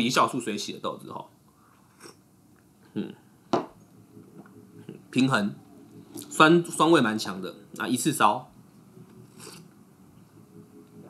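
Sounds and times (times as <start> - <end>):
person humming mm: 2.9 - 3.2
glass cup knocking on table: 3.5 - 3.8.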